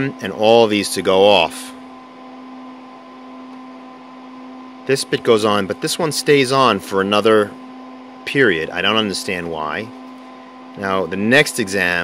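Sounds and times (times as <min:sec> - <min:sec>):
computer fans humming: 0:00.0 - 0:12.0.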